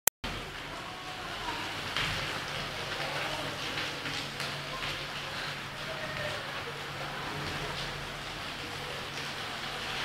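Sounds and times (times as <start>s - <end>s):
heavy rain pouring: 0.2s - 10.0s.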